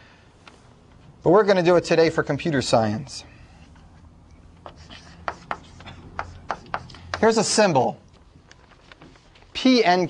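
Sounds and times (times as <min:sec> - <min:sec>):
low steady room hum: 0:00.0 - 0:10.0
writing strokes and taps on board: 0:04.6 - 0:07.6.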